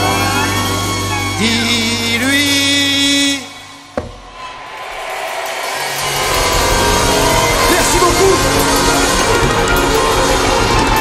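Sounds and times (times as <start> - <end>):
bass and drums: 5.9 - 11.0.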